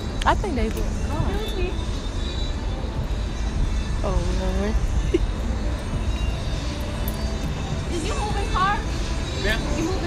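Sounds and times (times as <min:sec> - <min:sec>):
low urban rumble: 0:00.0 - 0:10.0.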